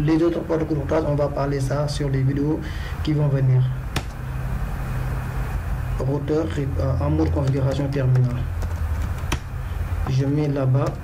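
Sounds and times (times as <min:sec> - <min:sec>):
low hum and hiss: 0:00.0 - 0:11.0.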